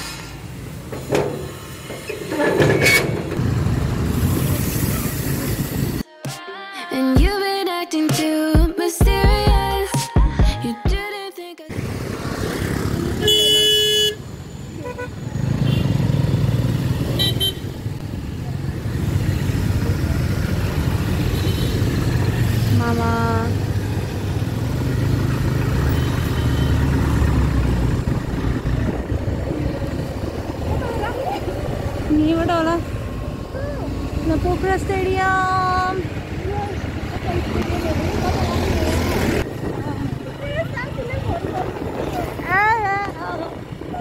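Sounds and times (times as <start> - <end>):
scooter and motorcycle engines: 0.0 - 6.0, 11.7 - 44.0
vehicle horn honks: 13.2 - 14.2, 17.2 - 17.7.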